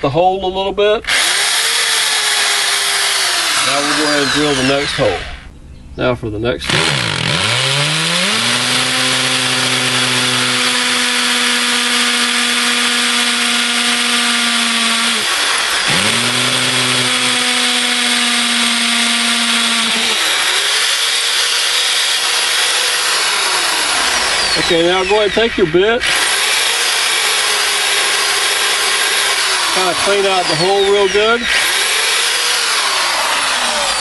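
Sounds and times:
hammer drill boring into brick: 1.1s - 5.5s, 6.6s - 34.0s.

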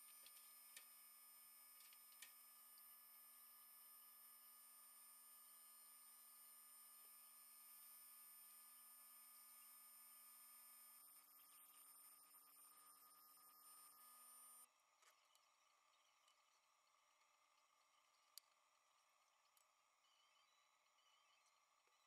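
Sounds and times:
low electrical hum: 0.0s - 22.0s.

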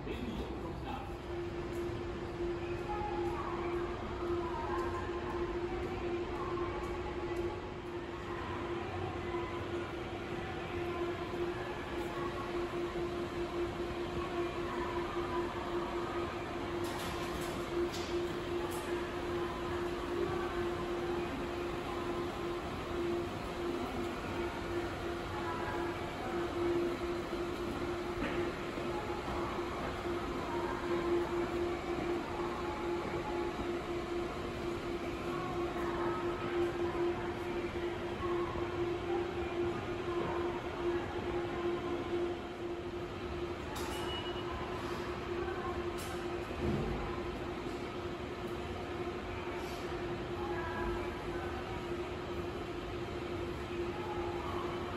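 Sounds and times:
steady low hum: 0.0s - 43.8s.

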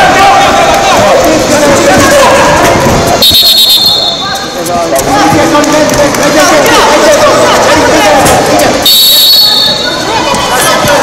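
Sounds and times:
voices shouting in echoing hall: 0.0s - 11.0s.

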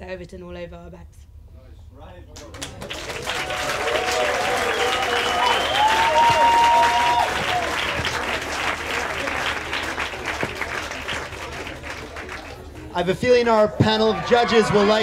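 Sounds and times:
audience applauding: 2.4s - 12.7s
people cheering: 2.8s - 12.6s, 13.8s - 15.0s.

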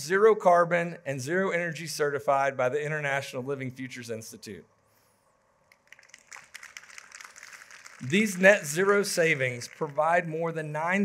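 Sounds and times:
audience applause: 5.9s - 10.3s.

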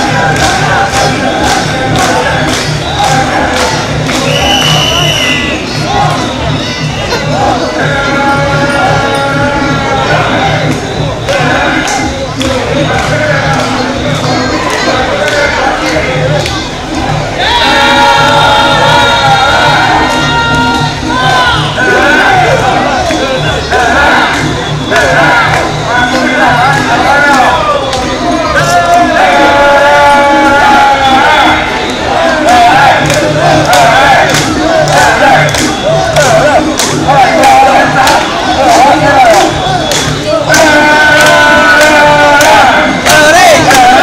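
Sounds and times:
crowd shouting: 0.0s - 44.0s.

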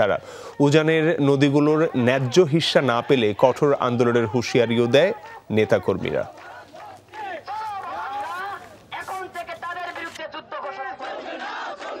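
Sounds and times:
crowd shouting: 0.6s - 8.8s, 9.9s - 12.0s
man shouting through megaphone: 0.6s - 11.0s.

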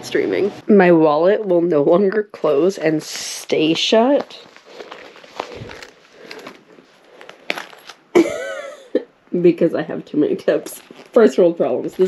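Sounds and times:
wallet rustling: 3.6s - 8.1s, 10.6s - 12.0s.

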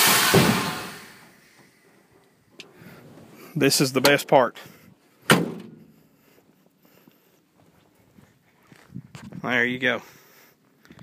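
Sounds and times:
faint footsteps on asphalt: 4.5s - 11.0s.

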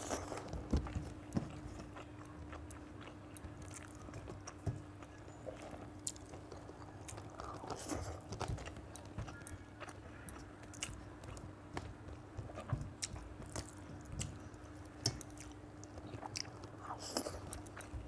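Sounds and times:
person chewing food: 0.0s - 18.0s.

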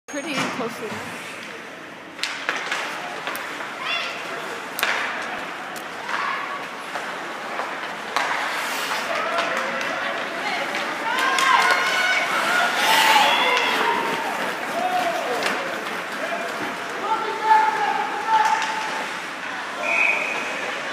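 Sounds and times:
hockey sticks clacking on puck: 2.2s - 20.6s
skates scraping on ice: 2.2s - 20.9s
people shouting: 10.9s - 18.8s.

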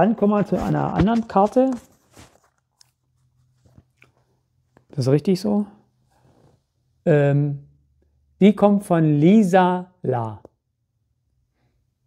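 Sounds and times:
paper rustling: 0.5s - 4.2s.

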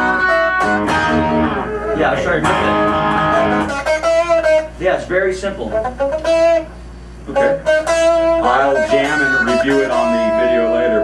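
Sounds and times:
electric guitar through amp: 0.0s - 4.8s, 5.7s - 11.0s.

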